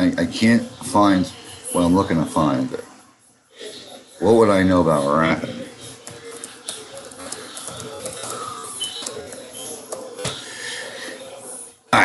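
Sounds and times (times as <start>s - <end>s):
faint voice: 3.5s - 12.0s
computer keyboard typing: 5.5s - 10.4s.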